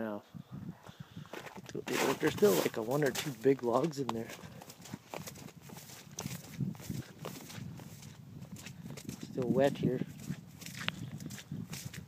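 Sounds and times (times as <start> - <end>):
footsteps through wet grass: 1.6 - 12.0.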